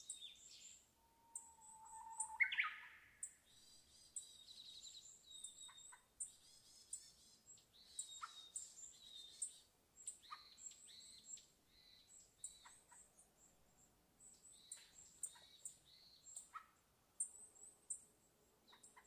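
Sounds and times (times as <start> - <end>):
birds chirping: 0.0 - 16.6.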